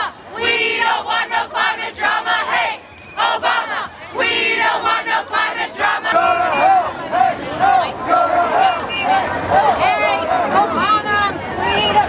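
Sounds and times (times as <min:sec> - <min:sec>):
crowd chanting and shouting: 0:00.0 - 0:12.0.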